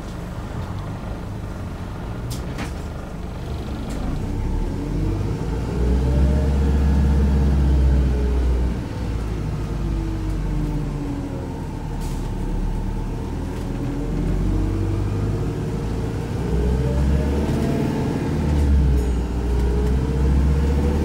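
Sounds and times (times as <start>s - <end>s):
bus drivetrain rumble and whine: 0.0s - 21.0s.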